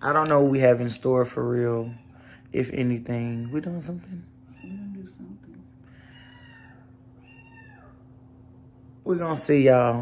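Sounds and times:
cat meowing faintly: 3.2s - 8.1s.

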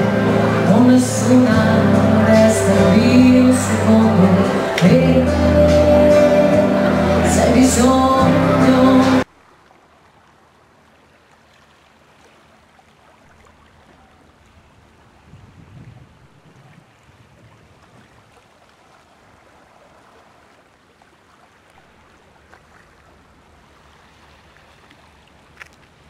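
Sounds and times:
water lapping among rocks: 9.4s - 26.0s.

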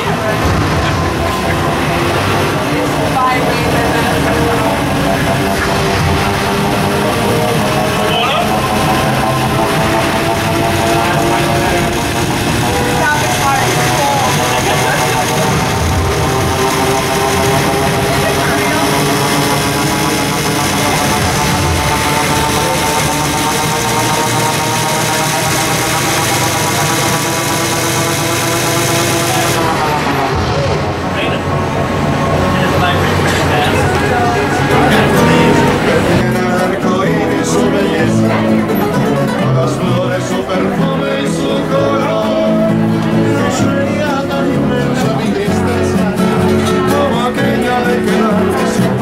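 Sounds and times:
shock machine buzzing drone: 0.0s - 36.4s.

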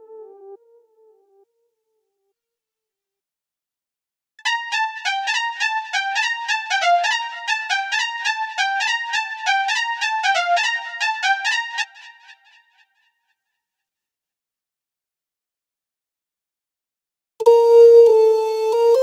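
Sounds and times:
synth lead melody: 4.4s - 12.6s.

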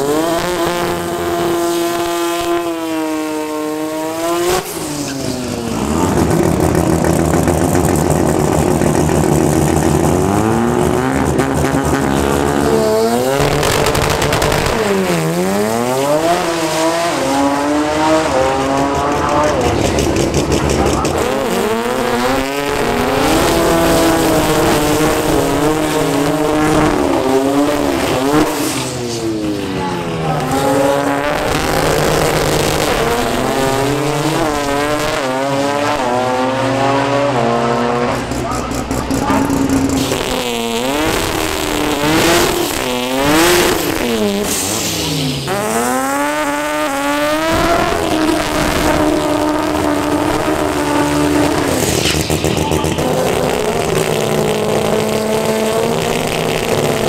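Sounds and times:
drag car engines revving: 0.0s - 57.0s
tyre noise from burnout: 37.3s - 57.0s.

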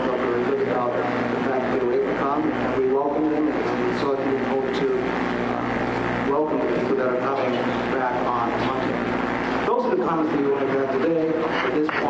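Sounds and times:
man speaking into microphones: 0.0s - 12.0s
steady low hum: 0.0s - 12.0s.

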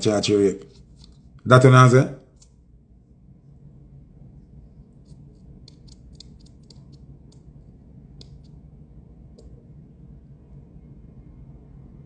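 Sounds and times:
low steady hum: 0.0s - 12.0s
small sharp clicks: 5.1s - 7.5s.

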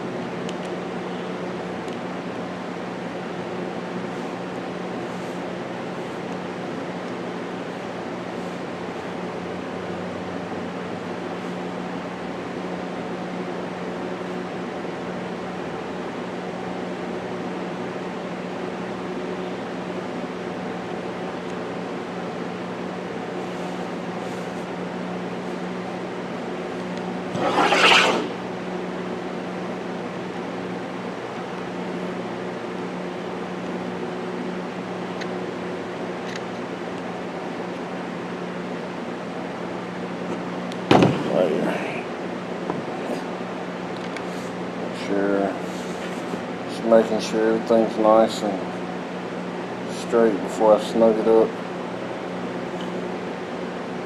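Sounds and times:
swishing rub: 27.3s - 28.4s.

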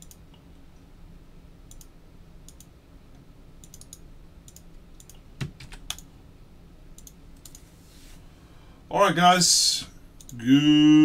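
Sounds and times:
low background hum: 0.0s - 11.0s
computer keyboard keys clicking: 3.6s - 6.1s.

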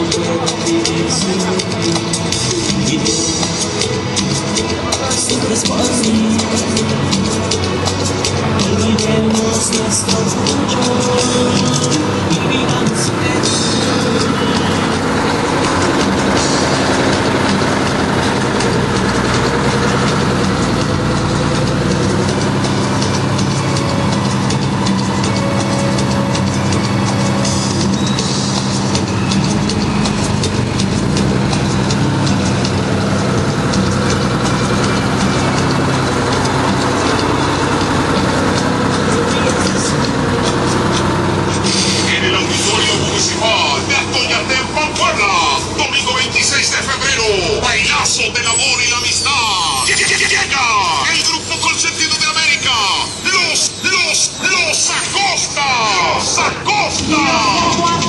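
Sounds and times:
bus engine running: 0.0s - 58.0s
music: 0.0s - 58.0s
voices: 0.0s - 58.0s.

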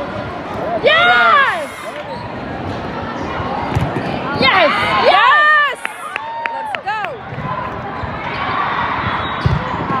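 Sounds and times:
din of voices in gym: 0.0s - 10.0s.

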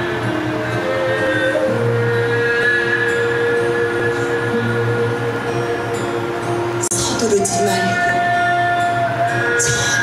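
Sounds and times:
bowed fiddle long notes: 0.0s - 10.0s.

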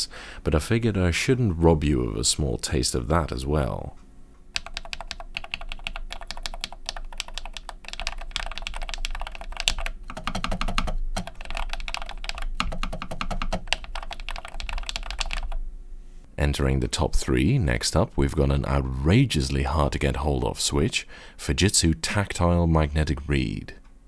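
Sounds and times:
keyboard typing: 4.5s - 15.6s.

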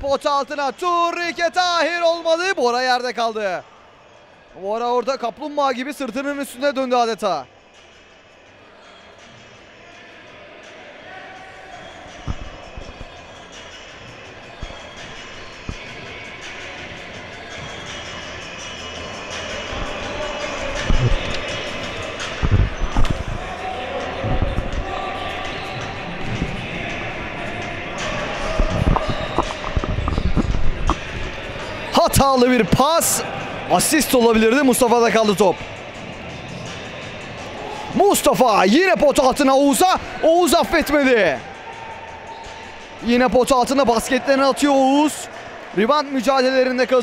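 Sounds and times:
echoing sports hall noise: 0.0s - 47.0s.

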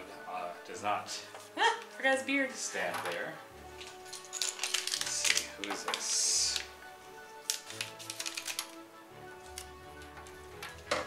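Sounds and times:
background music with held notes: 0.0s - 11.0s
scissors being handled: 2.9s - 6.7s, 7.4s - 8.8s, 9.4s - 11.0s
plastic bag clicks and taps: 3.9s - 6.8s, 7.4s - 8.8s, 9.5s - 11.0s.

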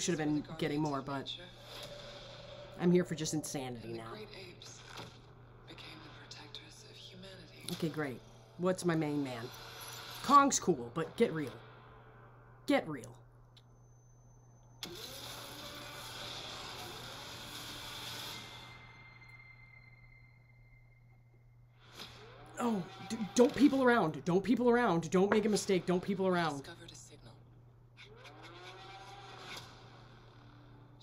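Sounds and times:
faint high-pitched ringing: 9.3s - 14.9s, 18.5s - 21.8s.

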